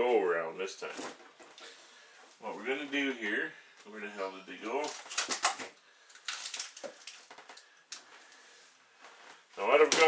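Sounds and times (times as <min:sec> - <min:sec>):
soft rustling: 0:06.9 - 0:09.9.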